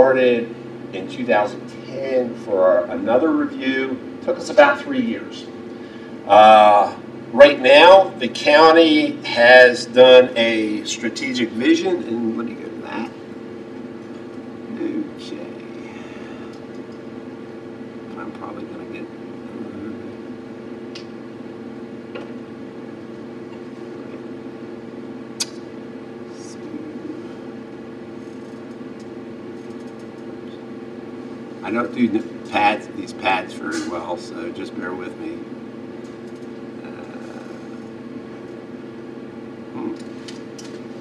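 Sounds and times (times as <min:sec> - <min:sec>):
low room hum: 0:00.0 - 0:41.0.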